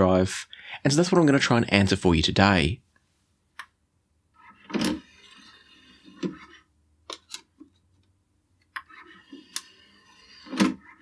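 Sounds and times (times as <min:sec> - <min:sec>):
disc tray motor whir: 0:04.4 - 0:06.6, 0:08.8 - 0:11.0.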